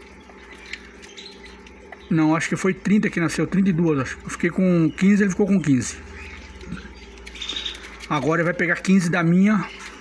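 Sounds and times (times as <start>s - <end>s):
quail chicks peeping: 0.0s - 10.0s
steady low hum: 0.0s - 10.0s.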